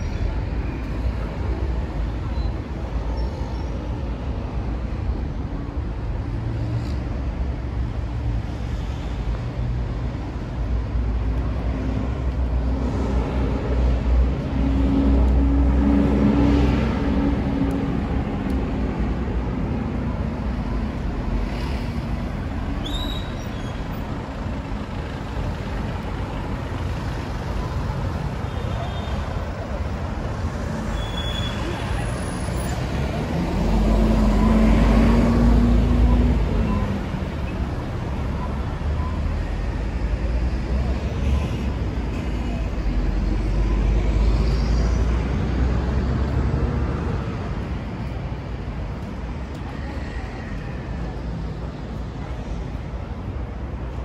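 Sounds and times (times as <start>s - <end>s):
cars and buses passing: 0.0s - 54.0s
heavy vehicle engine hum: 0.0s - 54.0s.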